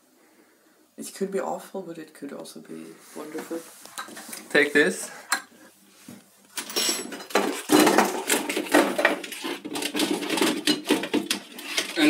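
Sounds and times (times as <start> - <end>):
jars and containers clattering: 6.6 - 12.0.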